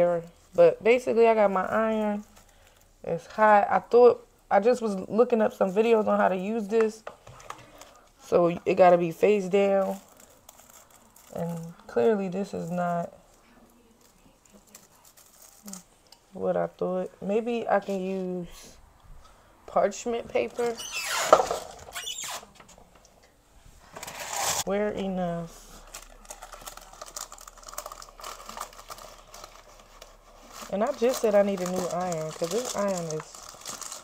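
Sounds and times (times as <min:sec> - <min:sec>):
foil or paper crinkling: 0:09.6 - 0:15.9, 0:25.4 - 0:34.0.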